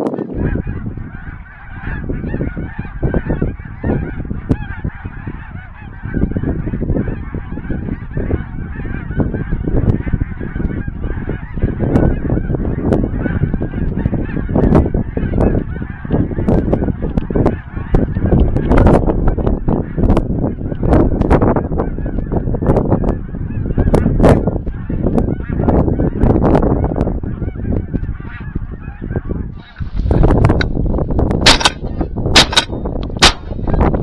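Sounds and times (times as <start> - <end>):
geese honking: 0.0 - 34.0
wind buffeting microphone: 0.0 - 34.0.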